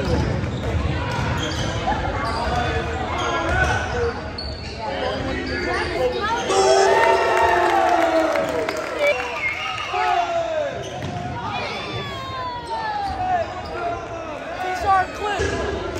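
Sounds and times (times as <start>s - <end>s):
players and spectators shouting: 5.0s - 15.9s.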